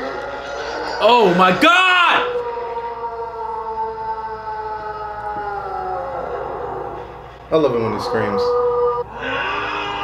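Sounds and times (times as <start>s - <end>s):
man screaming: 1.0s - 2.4s.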